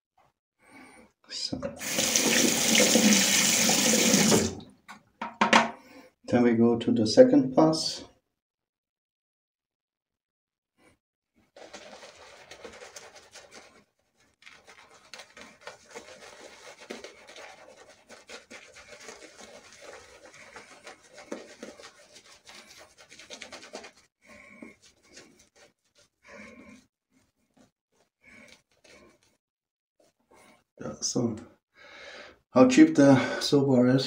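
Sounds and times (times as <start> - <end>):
shaving brush scrubbing wet skin: 1.8 - 4.5, 11.5 - 29.3.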